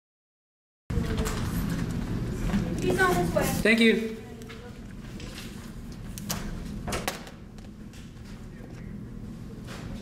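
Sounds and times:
low room hum: 0:00.9 - 0:10.0.

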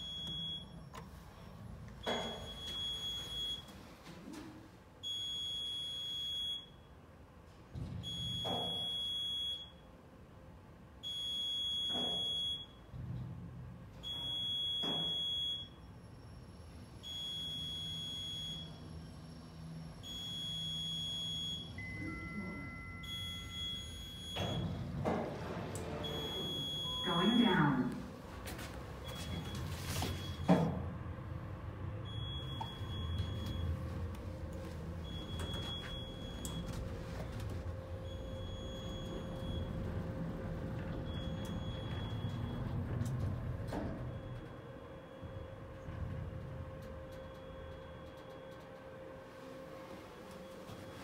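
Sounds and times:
elevator car travelling: 0:16.6 - 0:51.0.

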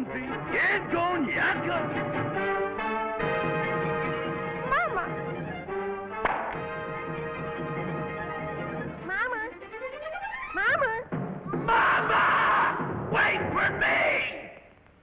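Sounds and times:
cartoon orchestral music: 0:00.0 - 0:13.9
sharp knock: 0:06.2 - 0:06.7.

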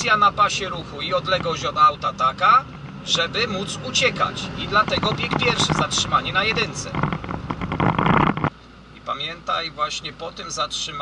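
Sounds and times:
rushing vehicle and road noise: 0:00.0 - 0:11.0.

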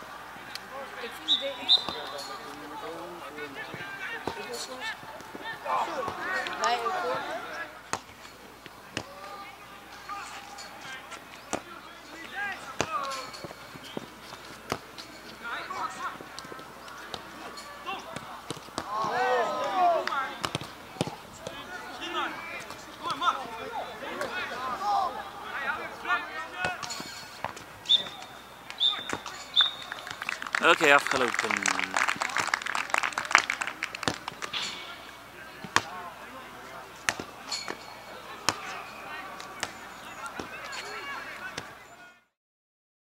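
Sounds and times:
distant shouts: 0:00.0 - 0:14.1, 0:15.4 - 0:42.3
referee's whistle blasts: 0:01.2 - 0:02.3, 0:27.8 - 0:29.9.

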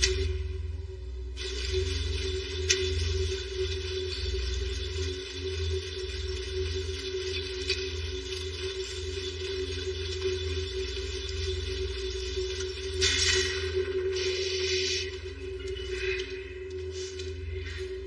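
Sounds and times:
constant hum: 0:00.0 - 0:18.0.

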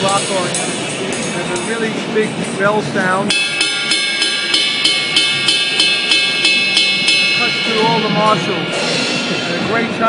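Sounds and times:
drumstick striking cymbal bell: 0:00.0 - 0:02.6, 0:03.2 - 0:10.0
person speaking: 0:07.4 - 0:10.0.

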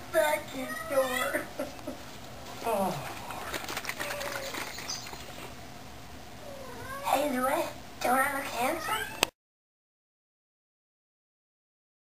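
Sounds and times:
low background noise: 0:00.0 - 0:09.3.

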